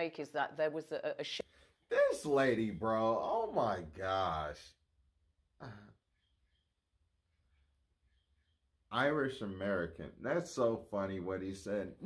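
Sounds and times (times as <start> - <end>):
man clearing throat: 5.6 - 6.0.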